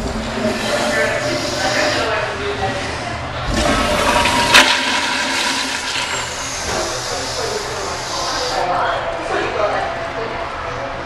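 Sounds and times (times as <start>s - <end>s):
toilet flushing: 0.0s - 8.7s.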